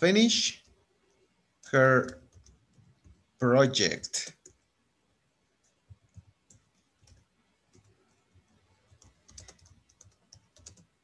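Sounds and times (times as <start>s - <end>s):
typing on computer keyboard: 2.1s - 3.2s, 5.6s - 11.0s.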